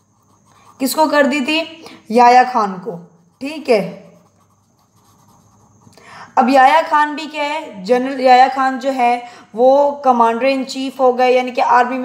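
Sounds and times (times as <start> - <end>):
pen scratching on paper: 0.0 - 6.0.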